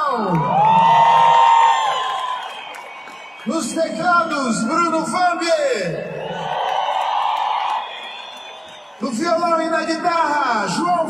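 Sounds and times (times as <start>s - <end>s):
stadium crowd cheering and screaming: 0.0s - 11.0s.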